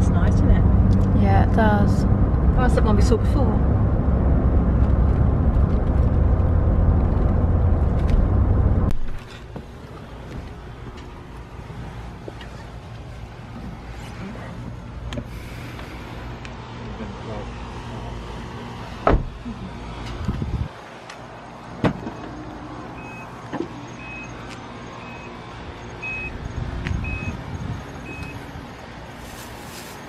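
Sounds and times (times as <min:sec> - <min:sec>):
low engine hum: 0:00.0 - 0:30.0
car door slams: 0:19.0 - 0:19.4.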